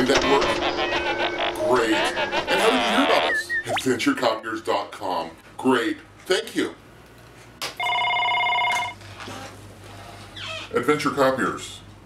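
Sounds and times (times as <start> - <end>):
telephone ringing: 0.0 - 3.7, 7.8 - 9.0.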